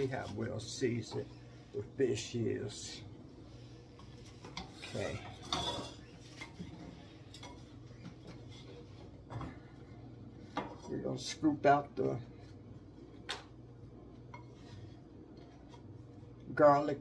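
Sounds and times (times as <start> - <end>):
low steady hum: 0.0 - 17.0
kitchen utensils clinking: 4.6 - 6.6.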